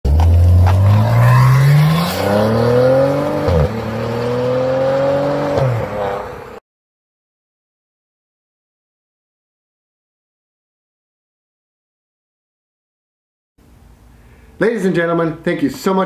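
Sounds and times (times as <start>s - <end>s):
car engine accelerating: 0.0s - 6.6s.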